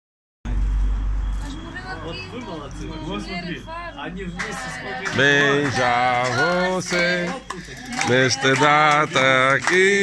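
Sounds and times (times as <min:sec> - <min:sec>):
people's voices: 0:01.3 - 0:10.0.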